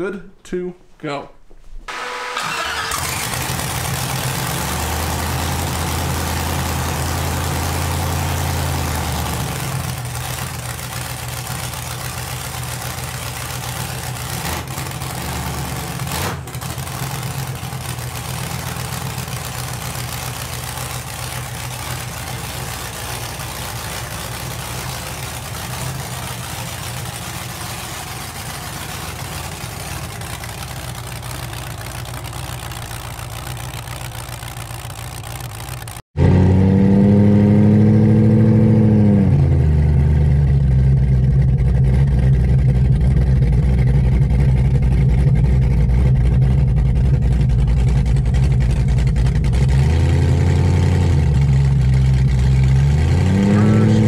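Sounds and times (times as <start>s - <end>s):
car engine idling: 1.9s - 36.1s, 37.8s - 54.0s.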